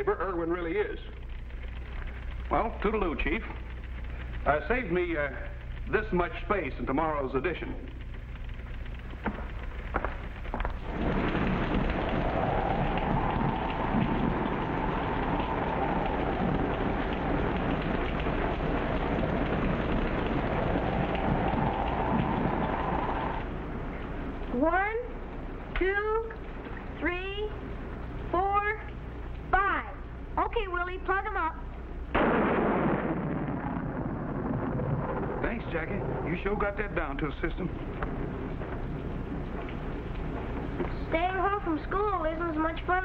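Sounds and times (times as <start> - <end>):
heavy rain pouring: 0.0 - 43.0
wavering howl: 11.8 - 18.5.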